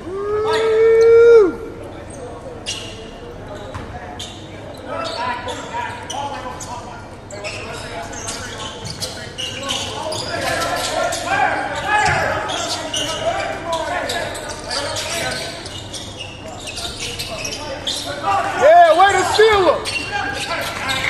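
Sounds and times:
voices echoing in gym: 0.0 - 21.0.

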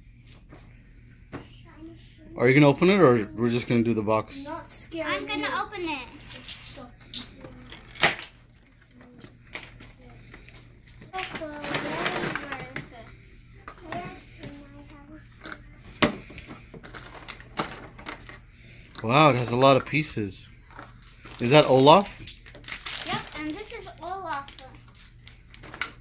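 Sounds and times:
child's voice: 1.4 - 2.4, 4.3 - 7.7, 11.1 - 15.7, 23.0 - 24.9.

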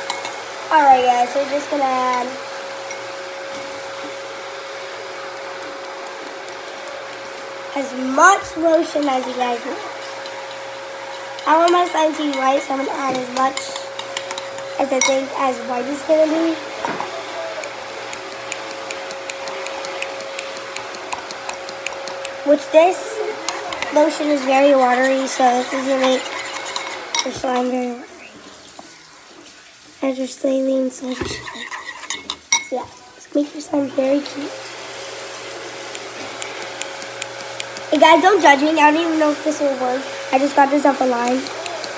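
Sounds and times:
faint steady hum: 0.0 - 41.9.

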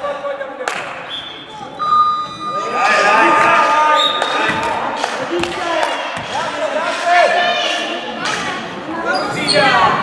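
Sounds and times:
held high tone: 1.8 - 3.1.

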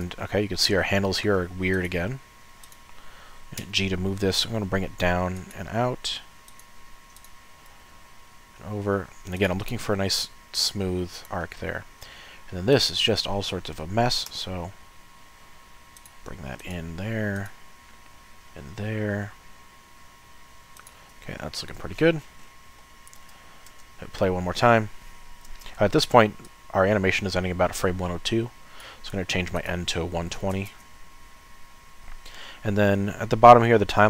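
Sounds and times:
low room noise: 0.0 - 34.0
thin steady whine: 0.0 - 34.0
computer mouse clicks: 2.6 - 3.0, 6.5 - 7.8, 16.0 - 16.2, 20.7 - 21.1, 23.0 - 23.9.

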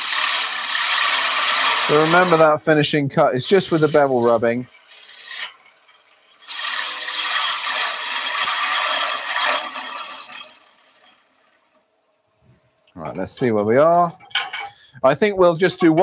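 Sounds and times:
gouge cutting wood on lathe: 0.0 - 11.8, 15.7 - 16.0.

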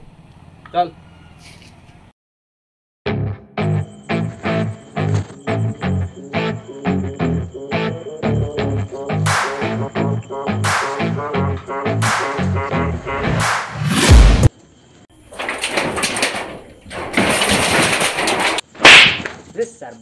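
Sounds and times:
music with pulsing beat: 5.6 - 13.4
boom: 13.4 - 14.5.

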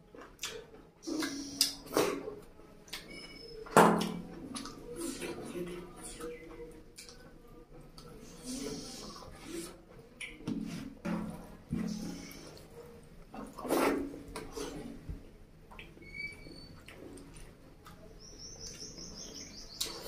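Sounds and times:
chewing and lip-smacking: 0.1 - 1.9, 4.5 - 8.2, 15.7 - 18.9
wet squelches of fingers mixing rice: 0.1 - 3.4, 4.0 - 20.0.

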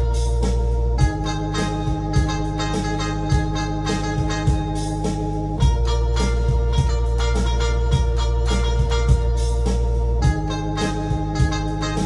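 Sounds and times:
drum beat: 0.0 - 12.0
electronic keyboard organ-like chords: 0.0 - 12.0.

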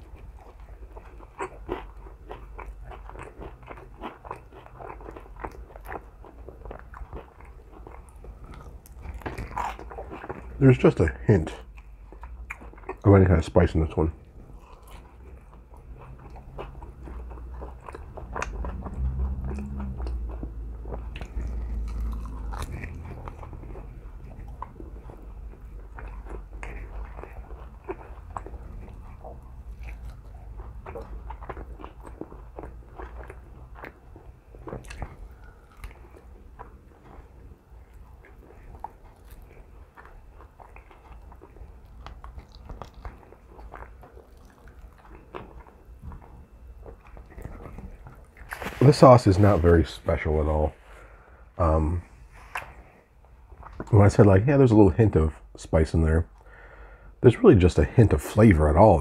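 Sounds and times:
person chewing meat: 0.0 - 54.0.

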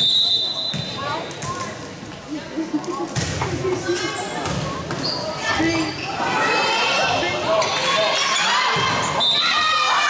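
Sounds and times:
referee's whistle blast: 0.0 - 1.0.

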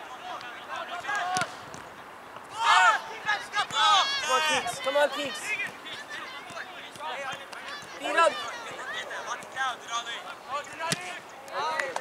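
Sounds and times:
people shouting: 2.5 - 6.8, 7.6 - 9.3.

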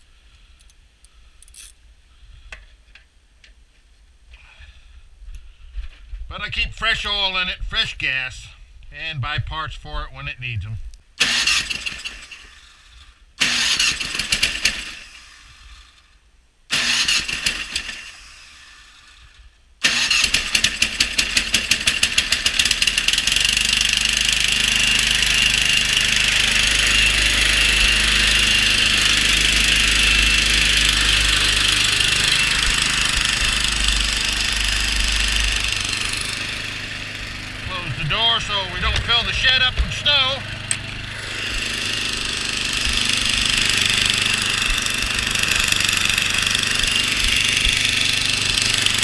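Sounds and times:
snowblower engine starting and running: 11.2 - 49.0.

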